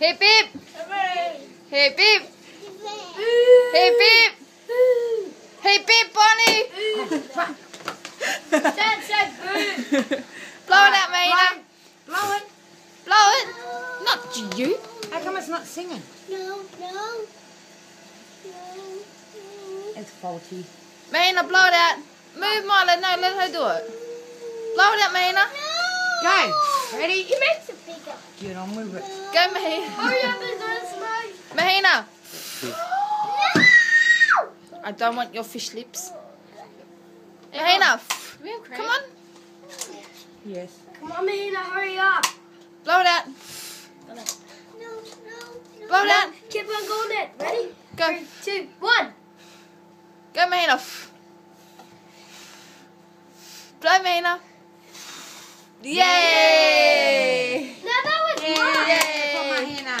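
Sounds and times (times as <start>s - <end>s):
family voices: 0.0s - 12.5s, 13.1s - 17.3s, 18.4s - 33.7s, 55.8s - 60.0s
child crying no: 3.0s - 4.0s, 4.7s - 5.4s, 13.3s - 15.2s, 25.6s - 26.9s, 29.0s - 31.2s, 32.7s - 34.5s
people cheering: 55.9s - 60.0s
hand claps: 58.1s - 60.0s.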